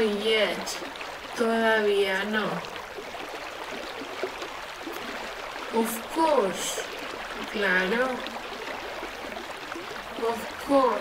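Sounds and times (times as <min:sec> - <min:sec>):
stream water rushing: 0:00.0 - 0:11.0.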